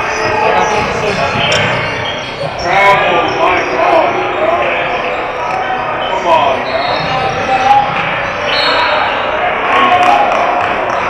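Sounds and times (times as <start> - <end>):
voices in large hall: 0.0 - 11.0.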